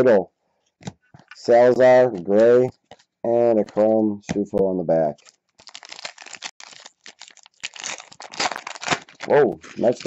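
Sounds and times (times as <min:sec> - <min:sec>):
foil wrapper crinkling and tearing: 0:05.2 - 0:10.0.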